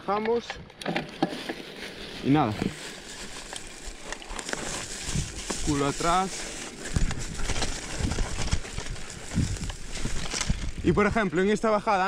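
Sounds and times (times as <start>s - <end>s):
bike clicks and rattles: 0.1s - 11.3s
bike tyres on dirt: 1.0s - 12.0s.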